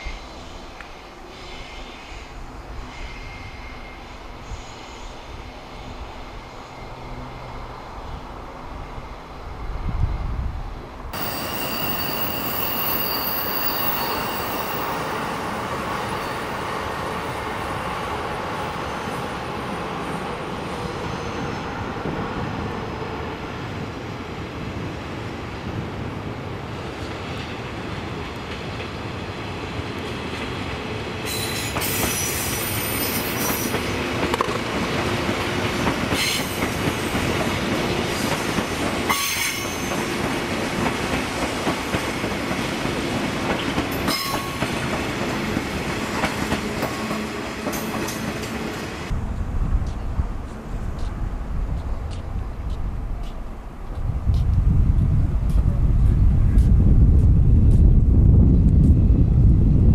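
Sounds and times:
electric train rumbling: 0.0 - 59.9
wheel squeal: 11.2 - 15.1.

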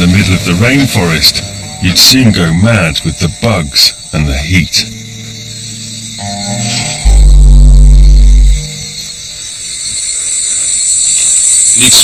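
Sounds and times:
documentary music with deep bass: 0.0 - 12.0
high insect drone: 0.0 - 12.0.

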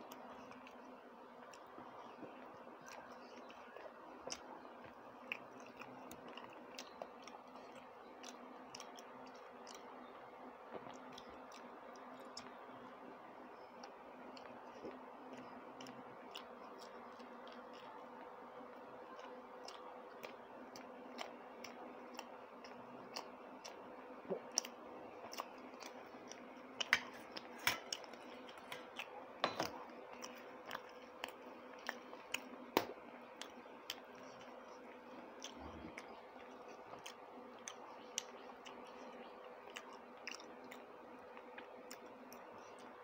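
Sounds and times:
faint steady hum: 0.0 - 43.0
wet mouth clicks from chewing: 1.5 - 10.0, 19.1 - 29.2, 29.8 - 43.0.

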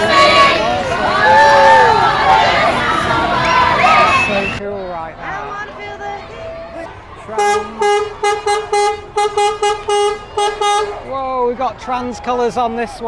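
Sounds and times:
horn blasts and toots: 7.3 - 11.1.

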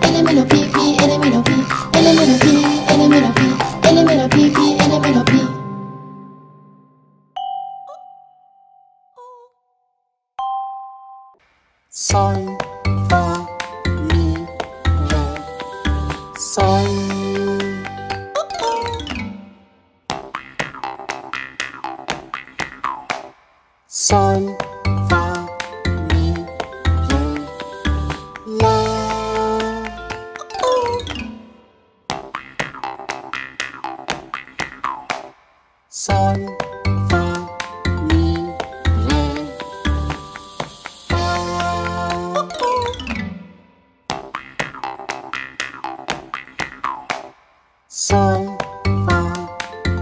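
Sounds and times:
bouncy cartoon tune: 0.0 - 6.4, 12.0 - 23.3, 24.0 - 35.3, 36.0 - 47.4, 48.0 - 50.0.

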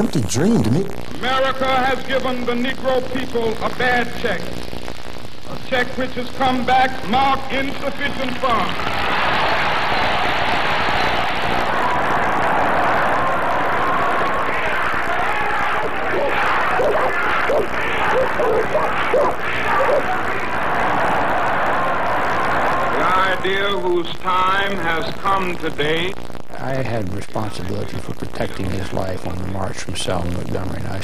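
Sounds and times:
crowd cheering and clapping: 7.8 - 24.8
people shouting: 8.8 - 23.4.

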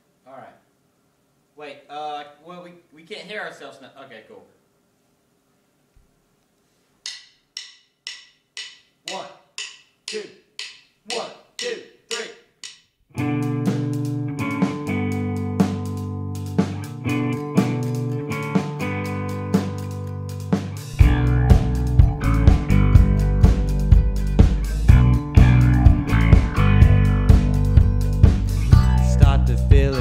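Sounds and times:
sharp count-in ticks: 7.0 - 13.0
person counting: 9.0 - 12.8
rock band playing: 13.2 - 30.0.

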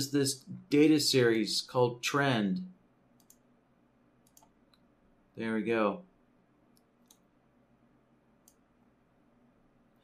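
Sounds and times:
faint computer mouse clicks: 3.2 - 3.4, 4.2 - 4.9, 6.7 - 7.3, 8.4 - 8.6.

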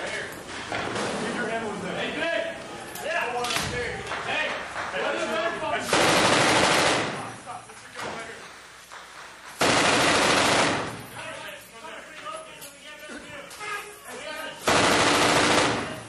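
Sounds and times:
men's voices: 0.0 - 6.0, 11.0 - 14.8
machine gun bursts indoors: 5.9 - 7.4, 9.5 - 11.1, 14.6 - 16.0.

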